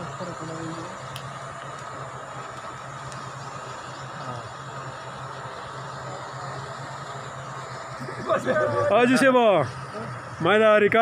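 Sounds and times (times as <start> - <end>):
jeep engine idling: 0.0 - 11.0.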